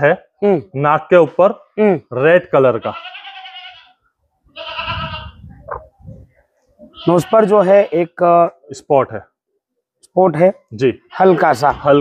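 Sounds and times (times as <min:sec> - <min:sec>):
goat bleating: 0:02.6 - 0:05.9, 0:06.8 - 0:08.2, 0:11.0 - 0:12.0.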